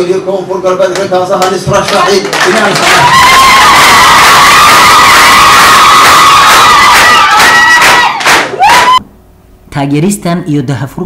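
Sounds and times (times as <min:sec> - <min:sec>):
crowd cheering and shouting: 0:02.8 - 0:09.0.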